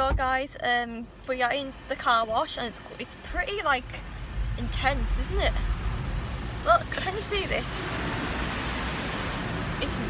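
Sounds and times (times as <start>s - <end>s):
low rumble: 2.6s - 9.8s
car wash spraying water: 3.4s - 10.0s.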